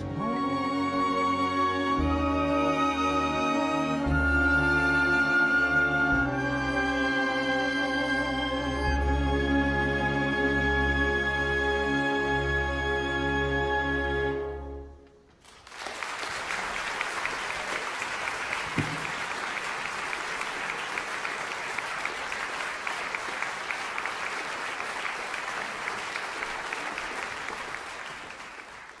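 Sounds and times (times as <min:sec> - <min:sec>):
audience applauding: 0:15.3 - 0:29.0
low thump: 0:18.8 - 0:19.2.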